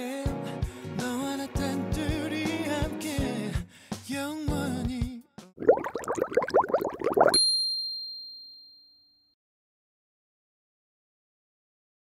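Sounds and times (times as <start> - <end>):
bright ringing ding: 7.4 - 9.1.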